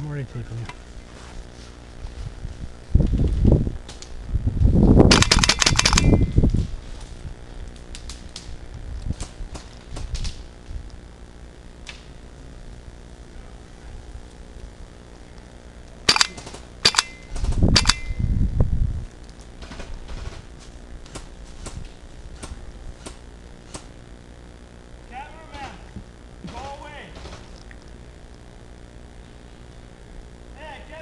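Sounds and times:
microphone handling rumble: 0.4s - 5.1s, 5.7s - 15.1s, 16.6s - 24.6s
airsoft gun shots: 5.1s - 6.4s, 16.1s - 18.2s, 25.5s - 27.6s.

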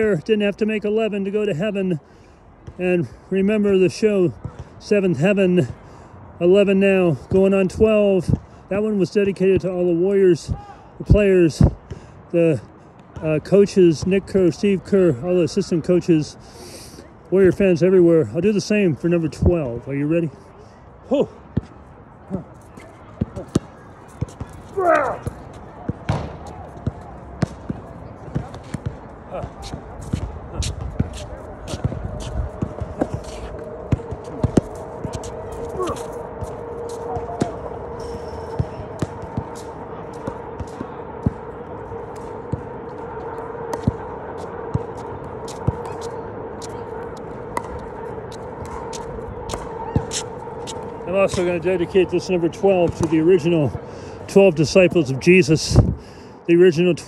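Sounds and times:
basketball bouncing: 23.2s - 46.8s
footsteps on hard court: 23.2s - 53.6s
steady hum: 26.3s - 56.0s
rising whistle-like sound: 31.5s - 52.6s.

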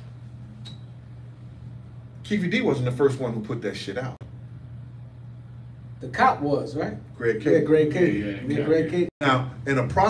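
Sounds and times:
steady low hum: 0.0s - 10.0s
man speaking: 6.1s - 10.0s.

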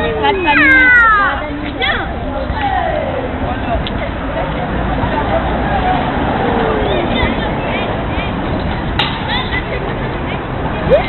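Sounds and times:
steady outdoor noise: 0.0s - 11.0s.

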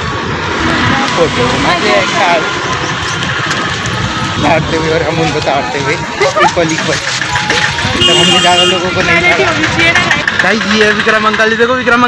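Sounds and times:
vehicle engines passing: 0.0s - 12.0s
people's voices: 0.5s - 12.0s.

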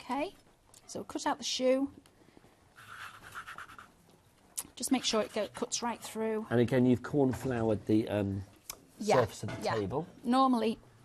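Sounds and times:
cookie cutter scraping sugar paste: 4.8s - 5.8s.

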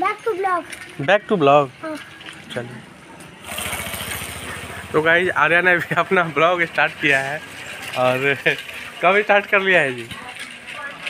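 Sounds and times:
engine running with fast pulse: 3.4s - 9.0s.

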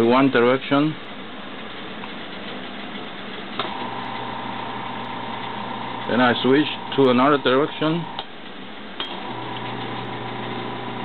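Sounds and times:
electric motor humming: 3.6s - 8.3s, 9.1s - 11.0s.

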